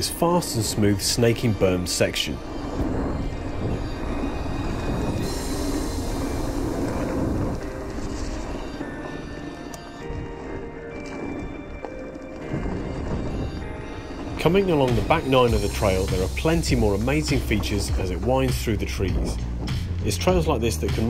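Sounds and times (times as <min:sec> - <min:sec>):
background music: 0:00.0 - 0:21.0
bike rumbling on dirt trail: 0:02.3 - 0:21.0.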